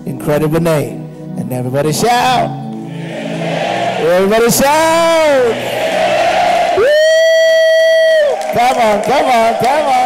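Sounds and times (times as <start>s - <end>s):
crowd shouting and cheering: 2.9s - 10.0s
person whooping into a microphone: 6.8s - 8.5s.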